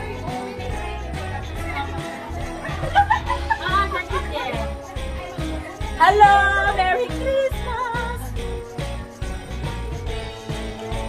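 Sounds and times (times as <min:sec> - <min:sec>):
jingle-bell christmas music: 0:00.0 - 0:11.0
woman singing yodel-like: 0:06.0 - 0:08.3.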